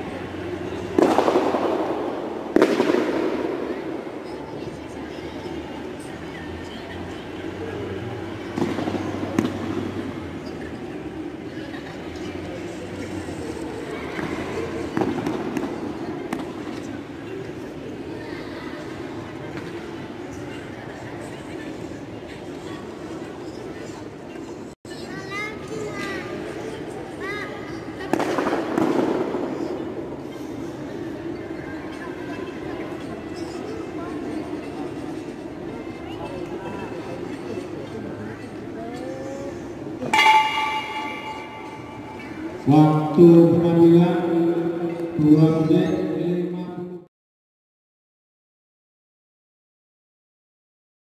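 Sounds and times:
murmur of crowd in hall: 0.0 - 47.1
metallic bell strike ringing: 40.1 - 42.5.

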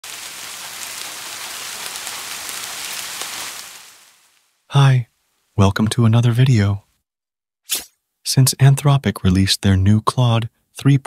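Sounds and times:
faint crackles: 0.0 - 5.6
rain-like hiss: 0.0 - 6.8.

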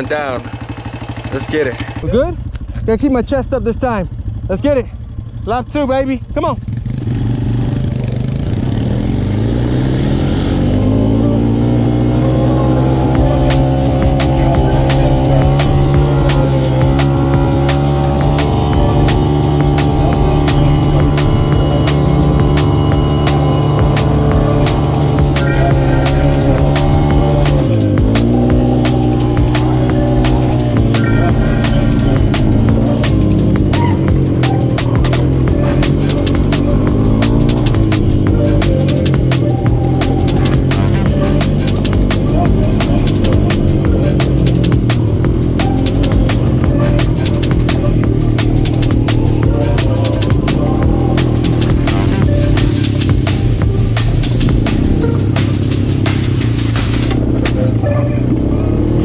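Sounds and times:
atv engine accelerating: 0.0 - 59.0
electronic music with fast beat: 6.4 - 57.8.

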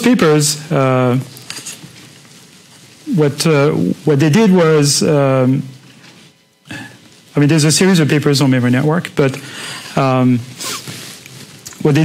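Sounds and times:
person saying uh: 3.1 - 4.2.

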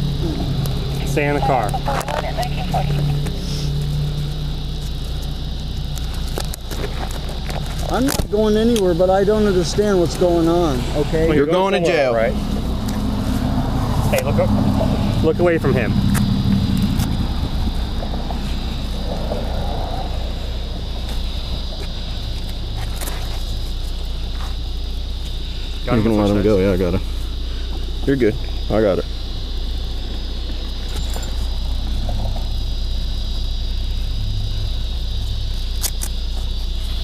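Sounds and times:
car engine idling: 0.0 - 37.0
steady low rumble: 0.0 - 37.0.

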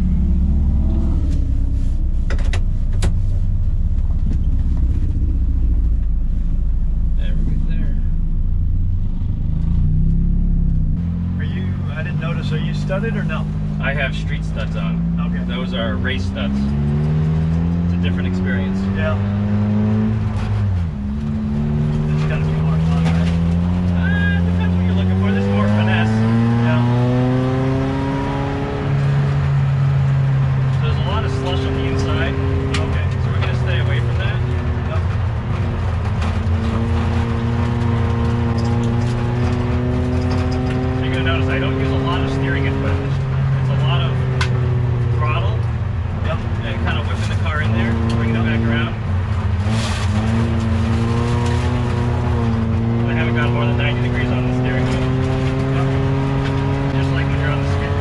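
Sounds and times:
race car engine revving: 0.0 - 58.0.

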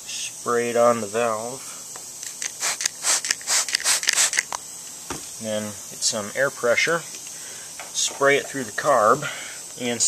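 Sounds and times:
spray bottle spritzes: 2.0 - 4.8.

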